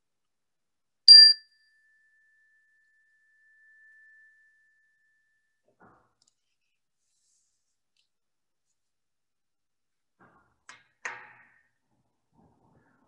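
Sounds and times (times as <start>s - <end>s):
small bell ringing: 1.1s - 4.5s.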